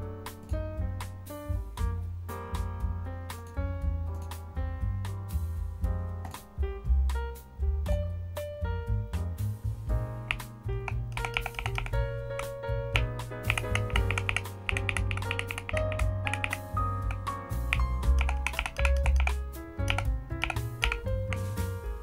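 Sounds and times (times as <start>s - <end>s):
background music with bass: 0.0s - 22.0s
keyboard keystrokes clicking: 10.3s - 21.5s.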